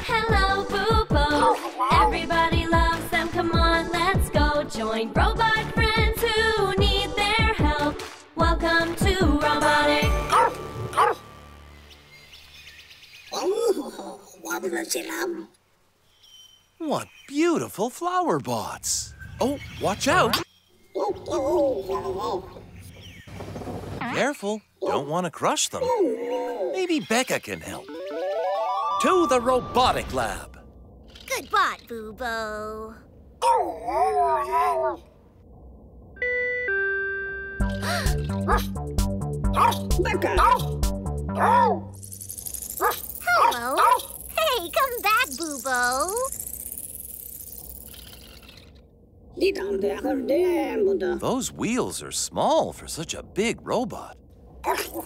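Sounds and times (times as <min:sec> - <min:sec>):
faint bird chirps: 0:16.0 - 0:17.5, 0:42.0 - 0:48.8
cartoon theme jingle: 0:27.9 - 0:30.5, 0:36.2 - 0:41.4.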